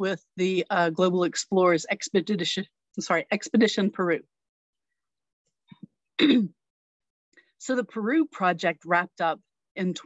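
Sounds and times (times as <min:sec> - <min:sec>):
woman clearing her throat: 0:06.2 - 0:06.6.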